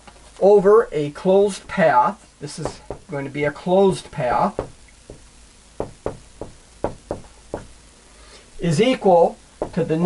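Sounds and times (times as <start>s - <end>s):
marker tapping on whiteboard: 4.6s - 7.7s, 9.6s - 9.9s.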